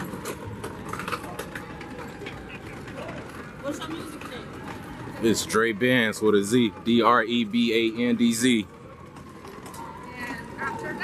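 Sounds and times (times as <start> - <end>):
cart wheels rattling over bricks: 0.0 - 11.0
faint voices: 0.0 - 11.0.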